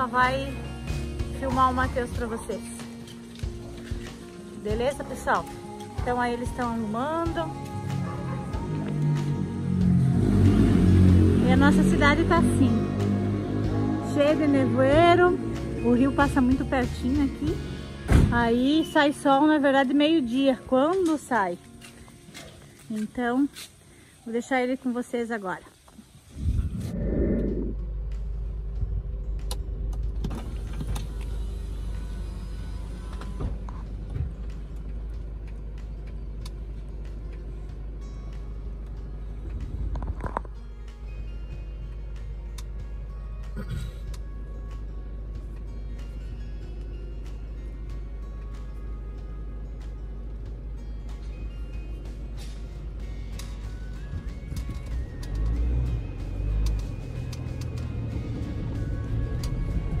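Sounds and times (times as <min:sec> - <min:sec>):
background music: 0:00.0 - 0:25.7, 0:26.3 - 1:00.0
diesel van engine idling: 0:27.5 - 0:40.1, 0:40.9 - 1:00.0.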